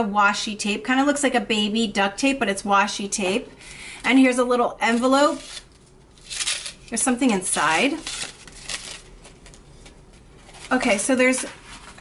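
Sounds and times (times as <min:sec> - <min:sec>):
paper envelope rustling: 0:04.9 - 0:12.0.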